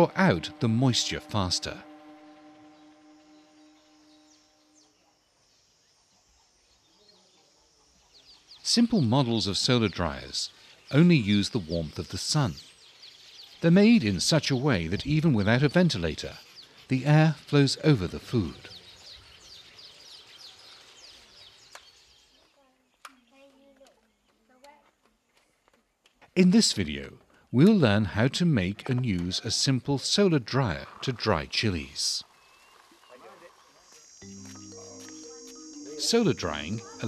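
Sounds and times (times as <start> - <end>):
faint birds chirping: 0.0 - 26.0, 29.7 - 37.0
faint high bird chirps: 32.3 - 37.0.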